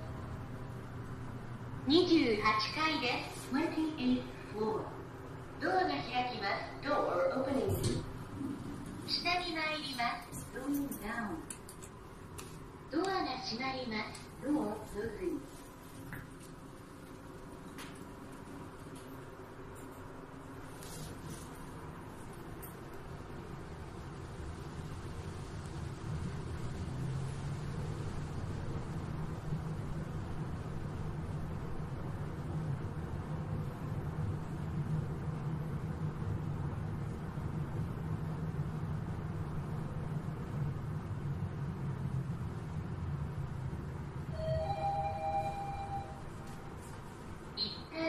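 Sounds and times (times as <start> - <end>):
lift car humming and rumbling: 0.0 - 48.0
two-note arrival chime: 44.4 - 46.3.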